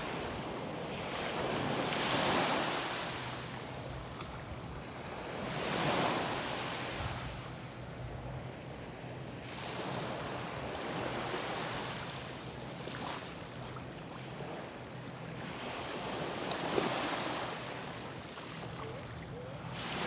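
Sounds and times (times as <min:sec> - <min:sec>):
small waves lapping on shore: 0:00.0 - 0:07.5, 0:09.4 - 0:20.0.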